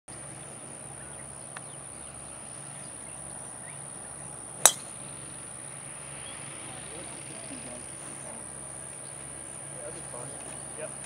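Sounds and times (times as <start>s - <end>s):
golf club striking ball: 4.6s - 5.1s.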